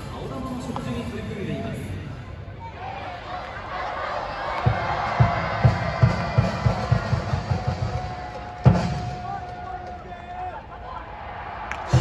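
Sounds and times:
crowd chanting: 2.6s - 8.4s
drum beats: 4.6s - 10.3s, 11.8s - 12.0s.

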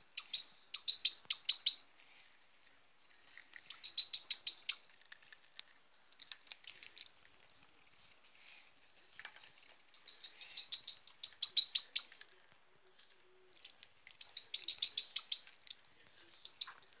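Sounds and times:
young bird chirping: 0.0s - 1.9s, 3.7s - 4.9s, 6.5s - 7.1s, 9.9s - 12.2s, 14.2s - 15.8s, 16.4s - 16.8s.

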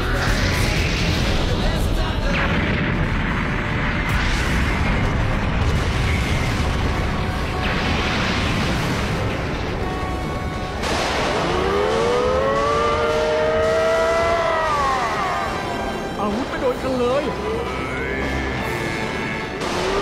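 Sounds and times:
battle music: 0.0s - 20.0s
booms and crashing debris: 0.1s - 16.2s
long rising pitched tone: 10.9s - 15.9s.

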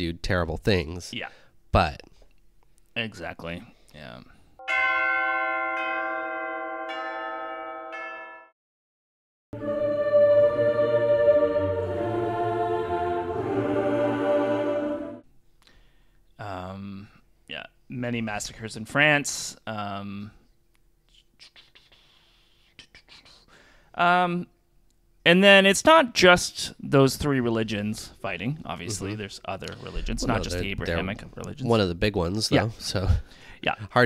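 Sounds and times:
bells ringing: 4.6s - 8.5s
faint breathing: 15.6s - 16.3s, 23.4s - 24.0s, 33.2s - 33.7s.

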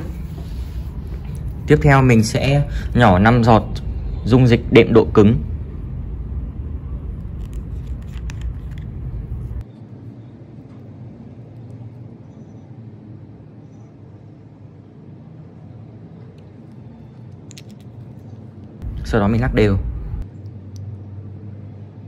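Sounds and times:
low background rumble: 0.0s - 12.1s, 14.4s - 22.0s.

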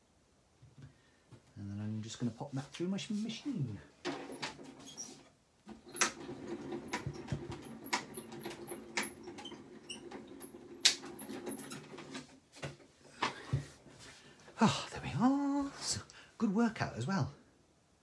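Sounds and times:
small high squeaks: 4.3s - 5.3s
die-cutting machine grinding: 5.8s - 12.1s.

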